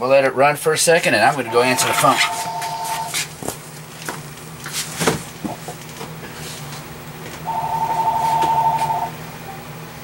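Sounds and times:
telephone ringing: 1.4 - 3.2, 7.5 - 9.2.

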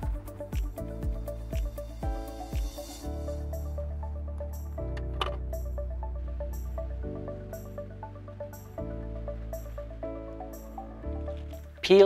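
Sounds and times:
electronic music: 0.0 - 12.0.

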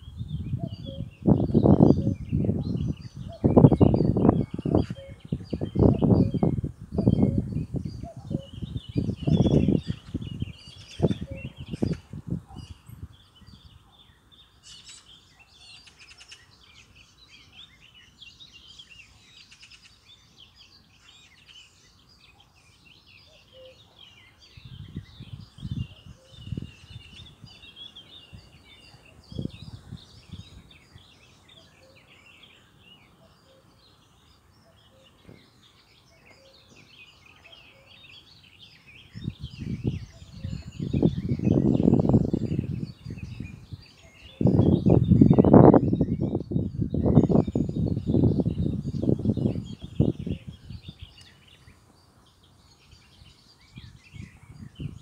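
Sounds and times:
small birds chirping: 0.0 - 55.0.

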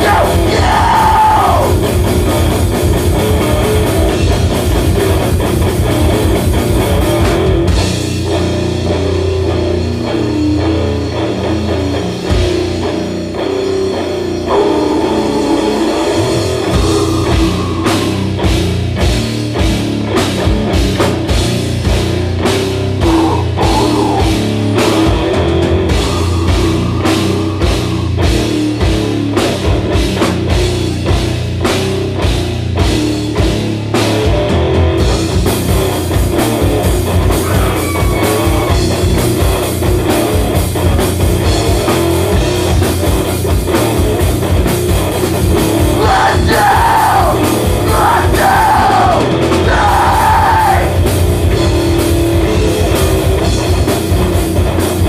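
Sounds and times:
drum kit: 0.0 - 55.0
electric guitars: 0.0 - 55.0.

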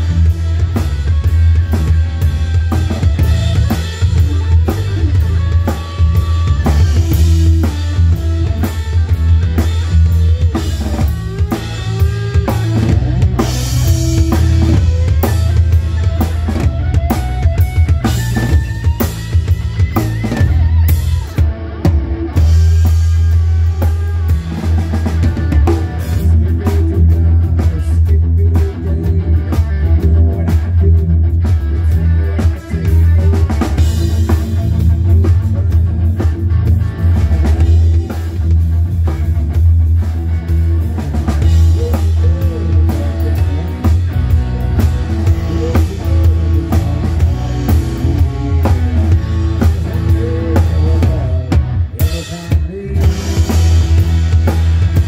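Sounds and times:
gliding lead guitar line: 0.0 - 55.0
rock band playing: 0.0 - 55.0.

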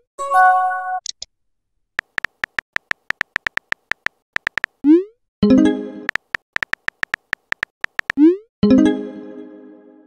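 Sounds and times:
phone keyboard typing clicks: 2.0 - 4.8, 6.1 - 8.2.

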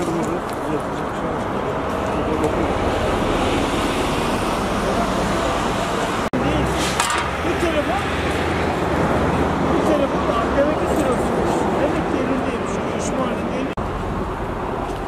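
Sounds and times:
road traffic noise: 0.0 - 15.0
people talking indistinctly: 4.7 - 13.8.

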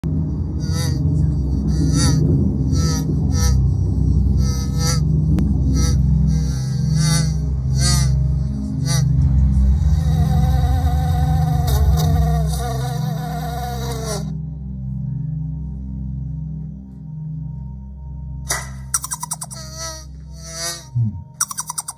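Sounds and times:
low plodding music: 0.0 - 21.9
cartoon bee buzzing: 0.6 - 14.4, 18.5 - 21.9.

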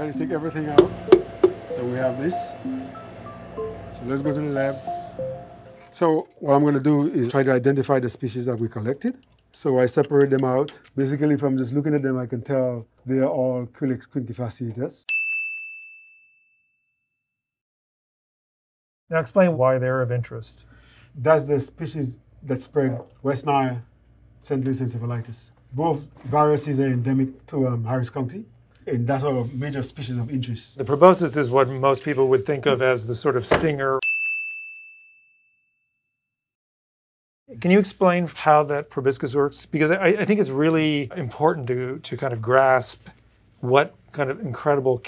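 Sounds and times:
high-pitched chime ding: 0.0 - 6.0, 15.1 - 16.6, 34.0 - 35.6.

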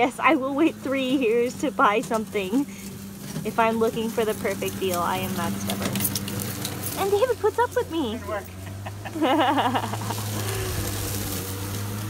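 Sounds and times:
electric lawn mower humming: 0.0 - 12.0
blade cutting grass hiss: 8.6 - 12.0.

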